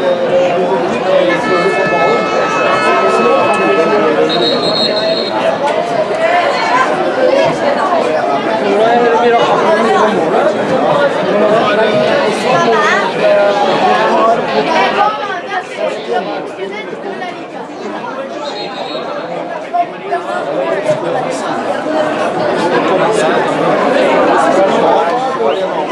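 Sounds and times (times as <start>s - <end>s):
crowd talking and calling out: 0.0s - 25.9s.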